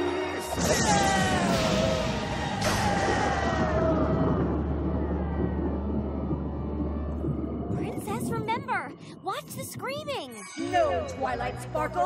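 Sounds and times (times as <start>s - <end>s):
cartoon thunderclap rumbling: 0.6s - 9.6s.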